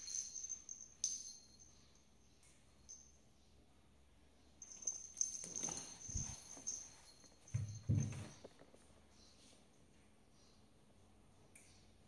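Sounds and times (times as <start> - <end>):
cats play-fighting on tiles: 4.5 - 10.2.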